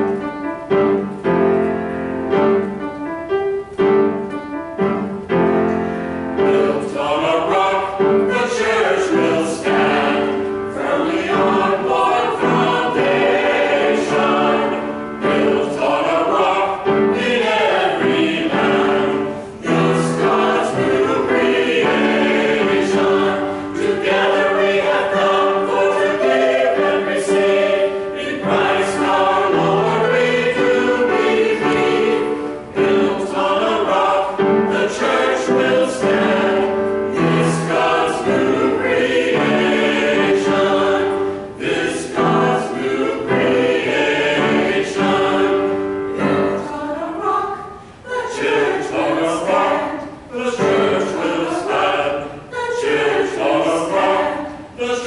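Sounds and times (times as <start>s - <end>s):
church choir singing: 0.0s - 2.8s, 3.8s - 55.0s.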